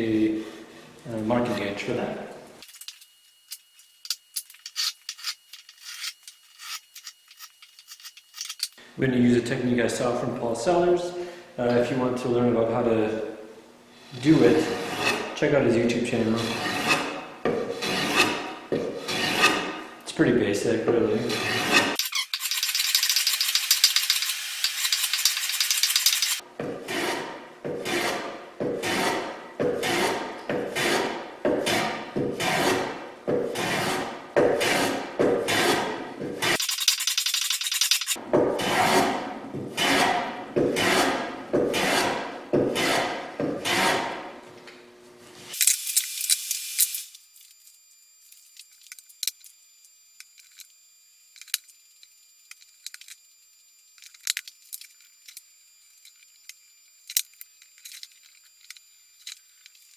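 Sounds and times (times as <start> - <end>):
hand plane cutting wood: 14.3 - 15.3, 16.3 - 19.7, 21.3 - 22.0, 26.8 - 36.6, 38.4 - 44.2.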